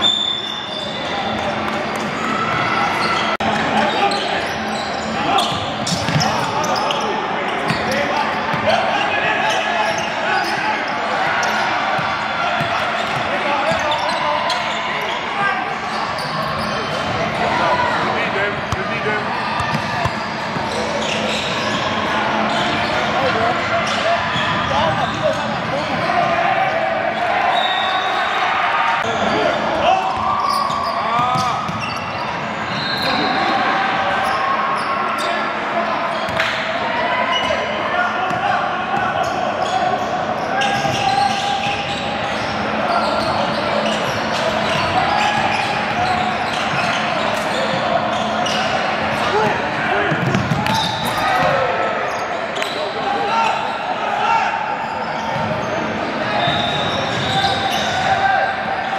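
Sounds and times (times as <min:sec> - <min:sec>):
shoe squeaks: 0:00.0 - 0:01.1, 0:02.7 - 0:08.2, 0:09.0 - 0:11.7, 0:12.7 - 0:15.2, 0:15.8 - 0:17.1, 0:19.6 - 0:23.0, 0:29.0 - 0:33.4, 0:39.2 - 0:49.5, 0:50.6 - 0:53.9, 0:54.8 - 0:58.1
hubbub of voices: 0:00.0 - 0:58.9.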